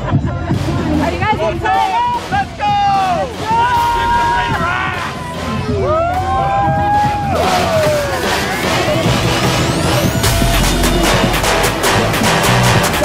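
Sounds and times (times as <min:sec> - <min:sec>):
background chatter: 0:00.0 - 0:11.4
football fans yelling: 0:01.0 - 0:11.8
rising electronic sweep: 0:07.2 - 0:13.0.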